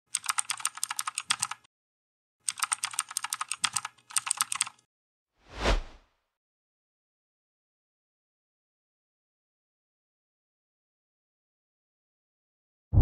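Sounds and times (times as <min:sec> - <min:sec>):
keyboard typing clicks: 0:00.1 - 0:01.7, 0:02.5 - 0:04.8
short rush of noise: 0:05.5 - 0:06.0.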